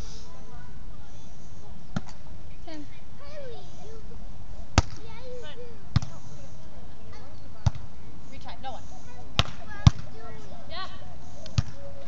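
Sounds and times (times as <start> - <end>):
hands slapping volleyball: 4.8 - 5.0, 9.4 - 10.1, 11.4 - 11.8.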